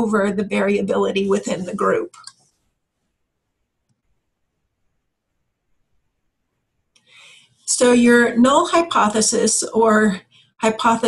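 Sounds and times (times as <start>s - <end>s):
woman's voice: 0.0s - 2.3s, 7.7s - 11.0s.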